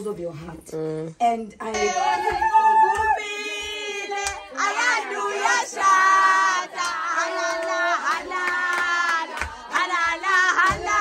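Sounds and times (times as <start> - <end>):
women singing high: 1.6 - 11.0.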